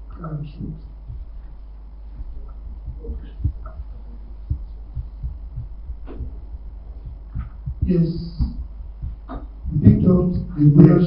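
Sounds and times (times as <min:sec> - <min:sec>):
low microphone hum: 0:00.0 - 0:11.0
soft low thuds: 0:00.0 - 0:11.0.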